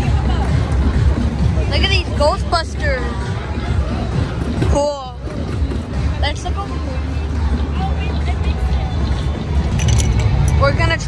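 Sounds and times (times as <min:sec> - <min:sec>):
crowd chatter: 0:00.0 - 0:11.0
loud music with heavy bass: 0:00.0 - 0:11.0.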